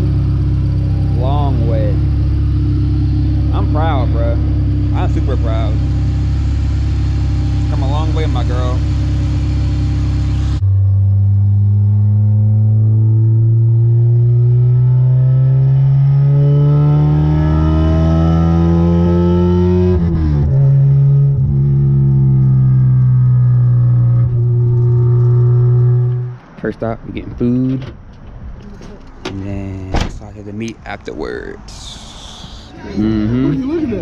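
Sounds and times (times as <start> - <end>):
car engine accelerating: 0.0 - 28.4.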